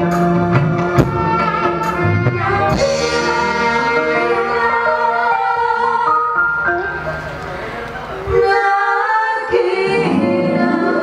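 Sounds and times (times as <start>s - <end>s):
live band with electric guitars: 0.0s - 8.6s.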